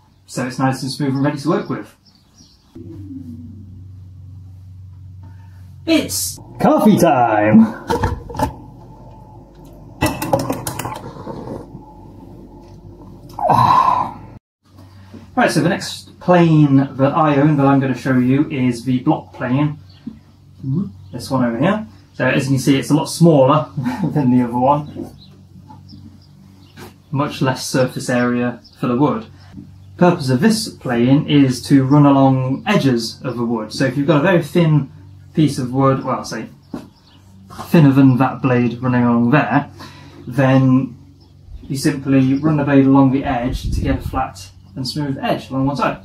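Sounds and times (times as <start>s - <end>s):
low steady hum: 2.6s - 46.0s
machine humming: 2.8s - 14.4s.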